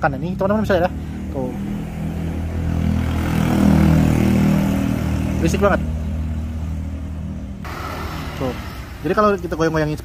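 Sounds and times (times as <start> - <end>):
engine humming: 0.0 - 9.8.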